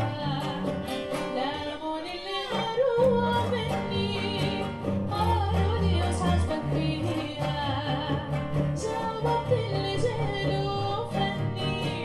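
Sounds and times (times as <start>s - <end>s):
bowed cello: 0.0s - 12.0s
plucked acoustic guitar: 0.0s - 12.0s
woman singing: 0.0s - 12.0s.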